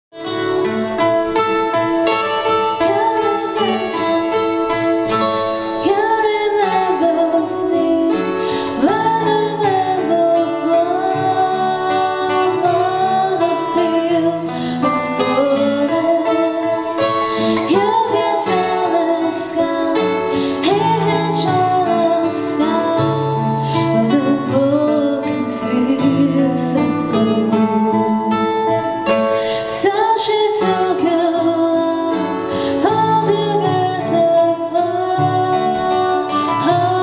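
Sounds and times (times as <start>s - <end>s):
guitar accompaniment: 0.1s - 37.0s
woman singing: 2.4s - 37.0s.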